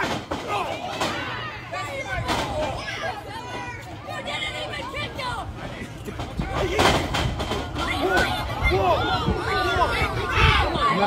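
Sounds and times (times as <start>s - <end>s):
spectators shouting: 0.0s - 5.6s, 6.3s - 11.0s.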